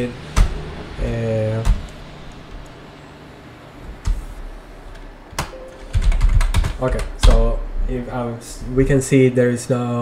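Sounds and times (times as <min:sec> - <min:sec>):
computer keyboard key presses: 0:05.4 - 0:07.4.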